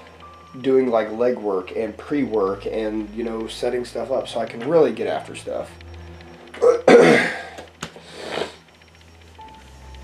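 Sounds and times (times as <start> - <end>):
faint steady musical tone: 0.0 - 10.0.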